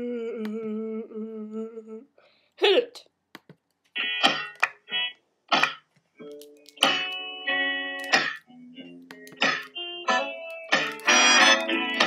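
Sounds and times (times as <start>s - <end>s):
sharp clicks: 8.0s - 9.8s, 10.4s - 12.0s.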